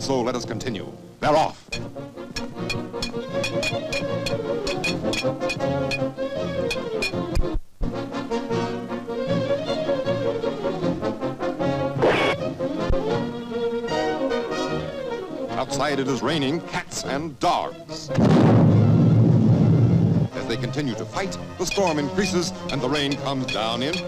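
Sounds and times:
fast orchestral cartoon music: 0:18.9 - 0:24.0
quick even ticks: 0:21.7 - 0:24.0.

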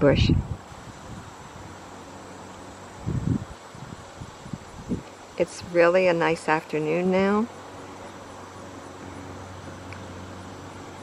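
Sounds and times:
faint indoor hiss: 0:00.0 - 0:11.0.

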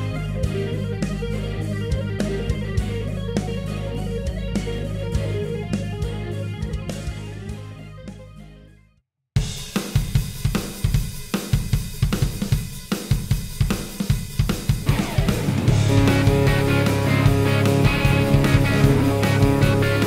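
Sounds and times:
distorted electric guitars: 0:00.0 - 0:08.1, 0:14.4 - 0:20.0
drum kit playing a beat: 0:00.0 - 0:08.4, 0:09.4 - 0:20.0
bass guitar: 0:00.0 - 0:08.9, 0:14.7 - 0:20.0.

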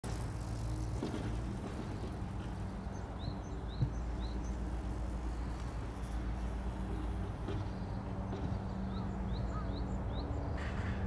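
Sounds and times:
low rumble of distant traffic: 0:00.0 - 0:11.0.

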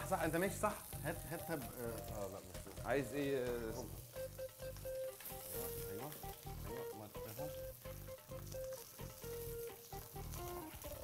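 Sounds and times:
background music of short notes: 0:00.0 - 0:11.0
fish sizzling in a frying pan: 0:00.0 - 0:11.0.

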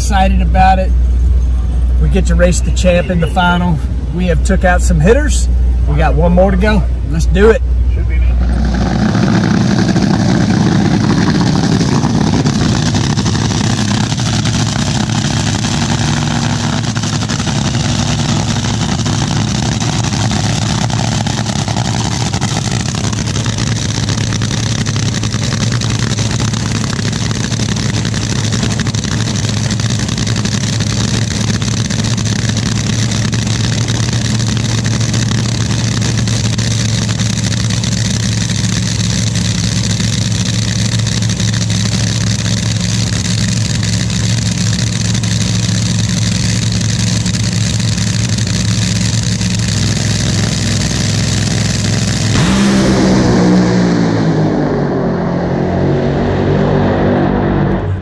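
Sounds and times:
dragster engine idling: 0:00.0 - 0:55.1.

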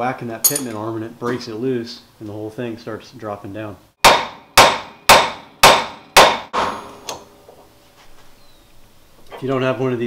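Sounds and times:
hammer striking metal: 0:04.0 - 0:07.3.

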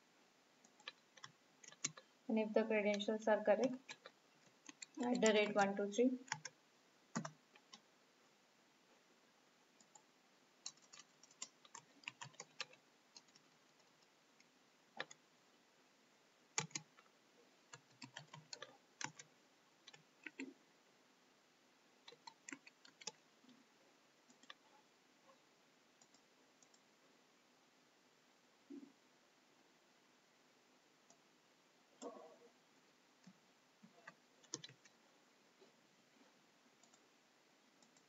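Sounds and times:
computer keyboard typing: 0:00.6 - 0:02.1, 0:02.8 - 0:07.8, 0:09.8 - 0:15.2, 0:16.5 - 0:17.1, 0:17.7 - 0:20.6, 0:22.0 - 0:23.2, 0:24.3 - 0:24.7, 0:33.2 - 0:35.0, 0:36.8 - 0:37.0
mouse clicking: 0:00.6 - 0:02.1, 0:02.9 - 0:06.6, 0:07.2 - 0:07.8, 0:09.8 - 0:15.2, 0:16.6 - 0:17.1, 0:17.7 - 0:20.6, 0:22.0 - 0:23.2, 0:24.3 - 0:24.7, 0:26.0 - 0:26.8, 0:33.2 - 0:35.0, 0:36.8 - 0:37.0.

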